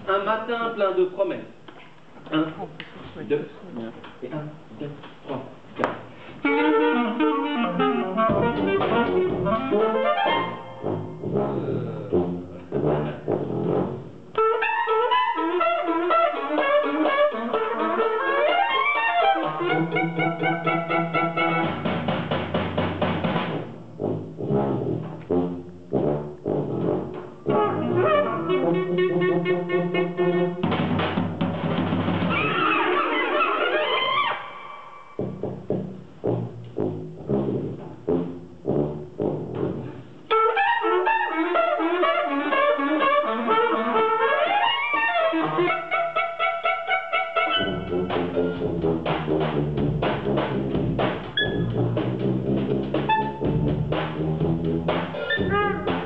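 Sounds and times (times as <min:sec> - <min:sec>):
tuba bass: 0:02.2 - 0:56.0
drums: 0:05.0 - 0:34.6, 0:35.2 - 0:46.0, 0:47.4 - 0:56.0
saxophone: 0:06.3 - 0:22.1, 0:24.0 - 0:31.1, 0:32.2 - 0:56.0
band playing clipped chords: 0:06.4 - 0:32.2, 0:47.4 - 0:56.0
trumpet: 0:06.4 - 0:56.0.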